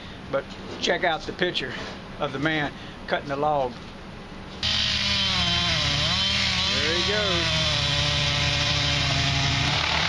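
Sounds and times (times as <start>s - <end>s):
chainsaw cutting wood: 4.6s - 10.0s.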